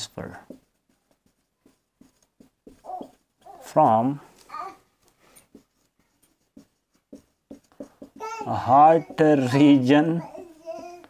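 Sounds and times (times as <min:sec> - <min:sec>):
marker writing on whiteboard: 0:00.0 - 0:11.0
marker squeak: 0:00.6 - 0:03.9.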